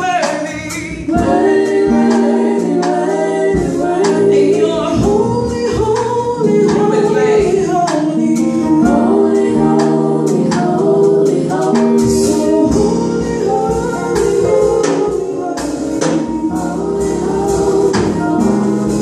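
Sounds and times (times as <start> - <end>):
drum kit: 0.0 - 19.0
electric keyboard chords: 0.0 - 19.0
women singing gospel in harmony: 0.0 - 19.0.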